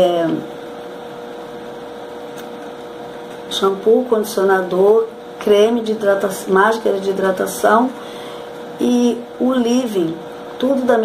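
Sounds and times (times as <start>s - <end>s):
faint hum tone: 0.0s - 11.0s.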